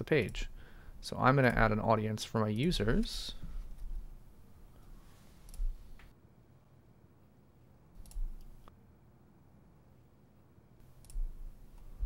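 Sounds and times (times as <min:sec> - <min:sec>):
computer mouse clicks: 0:05.5 - 0:06.1, 0:08.0 - 0:08.7, 0:11.0 - 0:11.9.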